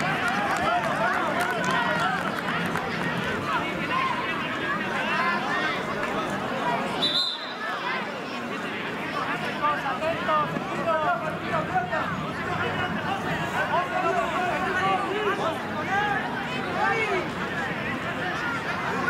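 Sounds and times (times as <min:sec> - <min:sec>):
spectators and players shouting: 0:00.0 - 0:19.0
short high whistle blast: 0:07.0 - 0:07.6.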